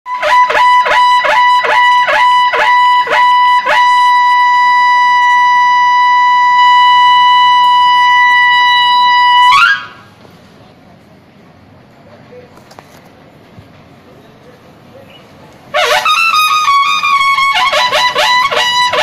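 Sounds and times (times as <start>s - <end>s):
brass horn blown loudly: 0.1s - 10.0s, 15.7s - 19.0s.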